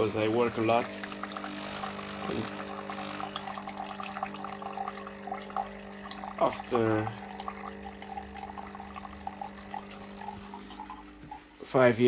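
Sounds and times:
coffee trickling into mug: 0.0 - 11.7
coffee machine pump humming: 0.0 - 12.0.

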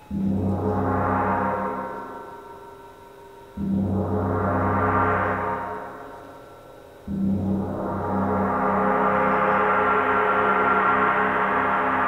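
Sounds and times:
concert gong ringing: 0.0 - 12.0.

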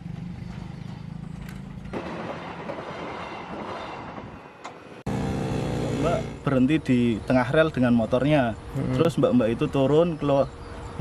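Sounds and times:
vehicle passing: 5.0 - 6.7.

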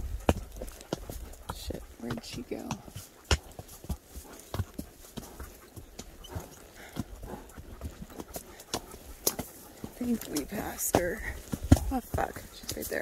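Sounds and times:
horse hooves on dirt trail: 0.0 - 13.0.

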